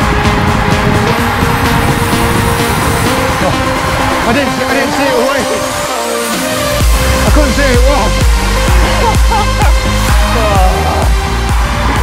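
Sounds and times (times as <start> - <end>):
electronic dance music: 0.0 - 12.0
rising synth sweep: 0.0 - 12.0.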